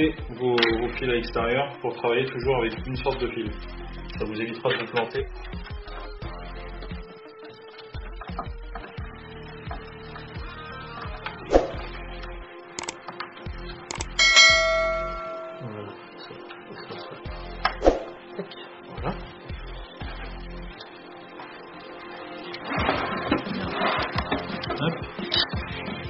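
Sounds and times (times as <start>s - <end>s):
faint background music: 0.0s - 26.0s
notification bell ding: 14.2s - 15.9s.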